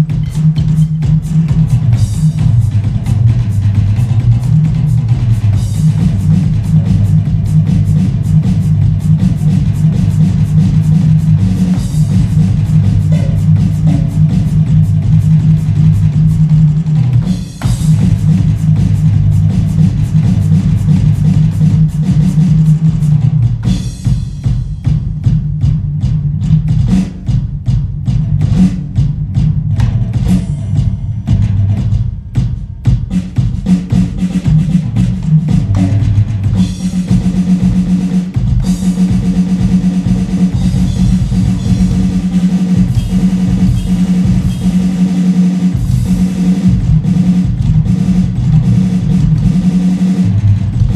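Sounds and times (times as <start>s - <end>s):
music holding a low note: 0.0s - 22.9s
bass line in music: 0.0s - 50.9s
drum kit played with sticks: 0.0s - 50.9s.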